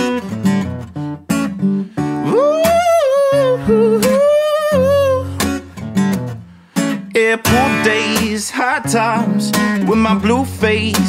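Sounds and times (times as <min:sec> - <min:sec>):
strummed acoustic guitar: 0:00.0 - 0:11.0
man singing wordless melody: 0:02.2 - 0:05.4, 0:07.0 - 0:11.0.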